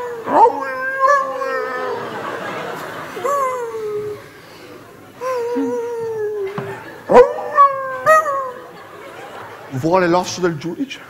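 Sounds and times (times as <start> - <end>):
man imitating whining dog: 0.0 - 2.3, 3.2 - 4.3, 5.2 - 8.7.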